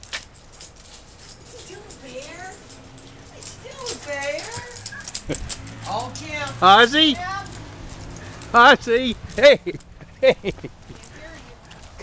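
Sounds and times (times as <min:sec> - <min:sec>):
collar tags jingling: 0:00.0 - 0:12.0
puppies whining: 0:01.3 - 0:05.9.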